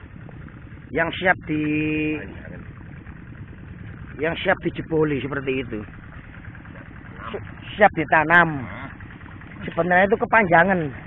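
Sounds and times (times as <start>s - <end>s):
tractor engine rumbling: 0.0s - 11.0s.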